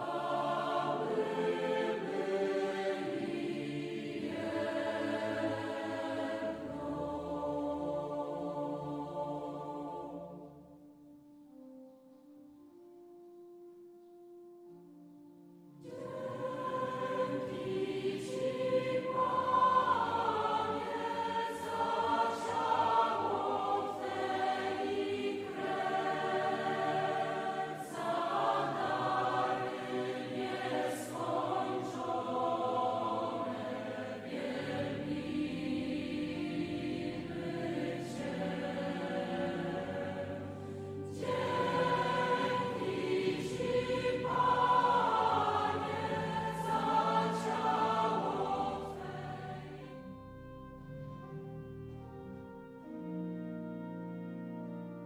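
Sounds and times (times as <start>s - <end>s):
choir singing: 0.0s - 10.8s, 15.8s - 50.3s.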